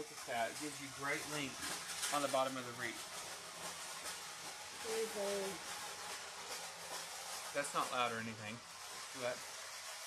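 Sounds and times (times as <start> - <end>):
artificial greenery rustling: 0.0 - 10.0.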